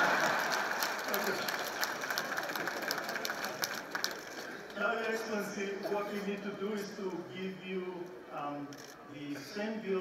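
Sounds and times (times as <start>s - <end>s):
crowd applauding: 0.0s - 4.8s.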